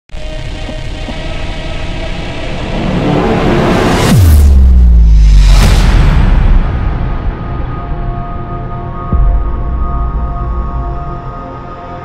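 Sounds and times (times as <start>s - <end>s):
dense rumbling riser: 0.2s - 12.0s.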